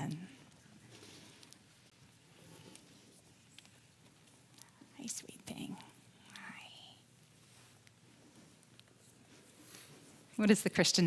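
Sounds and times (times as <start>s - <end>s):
whispered voices: 4.0s - 7.6s.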